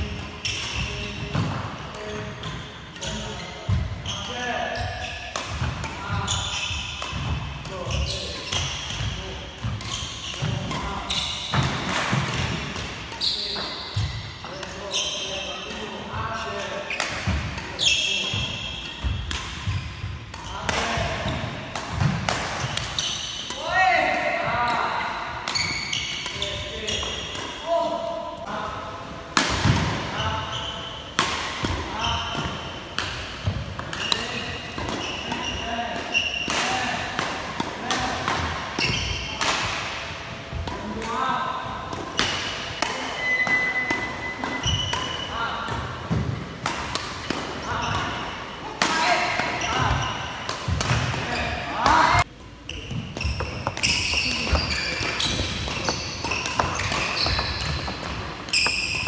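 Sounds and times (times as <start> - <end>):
shoes squeaking on floor: 7.8 - 9.0, 9.7 - 11.7, 13.1 - 15.4, 22.6 - 23.5, 25.5 - 27.4, 30.0 - 31.2, 31.8 - 37.0, 38.8 - 39.4, 43.0 - 48.4, 49.0 - 59.0
rackets striking shuttlecock: 29.3 - 52.3, 52.9 - 59.0.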